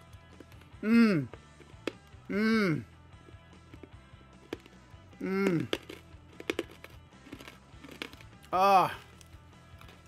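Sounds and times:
faint background music: 0.0 - 10.0
chewing hard biscuit clicks: 3.6 - 10.0.

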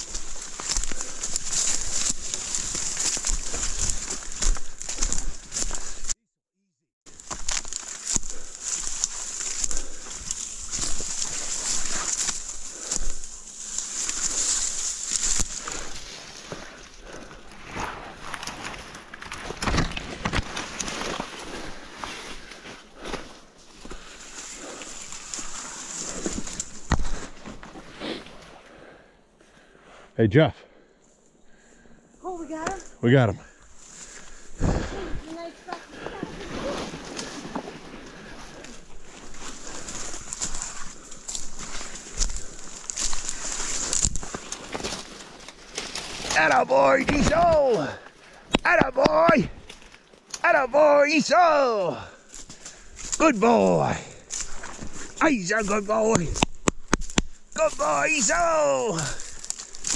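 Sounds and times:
brush rustling and crackling: 0.0 - 6.2, 7.1 - 28.9, 31.0 - 59.9
footsteps in undergrowth: 0.0 - 6.2, 7.1 - 29.8, 31.0 - 59.9.

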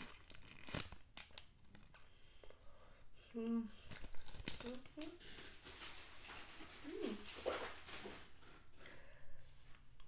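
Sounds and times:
wrapper crinkling: 0.0 - 2.0, 3.8 - 8.4.

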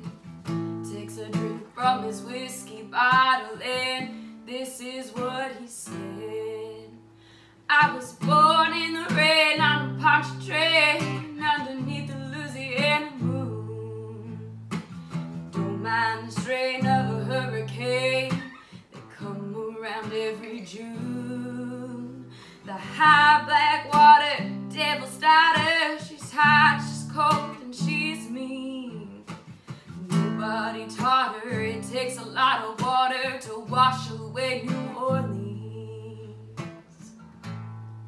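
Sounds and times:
woman singing: 0.0 - 7.1, 7.7 - 37.1.

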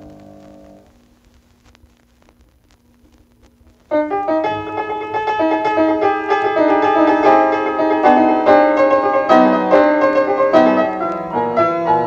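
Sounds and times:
record surface ticks: 0.0 - 8.1, 9.7 - 11.6
faint steady hum: 0.0 - 12.0
piano chord: 3.9 - 12.0.

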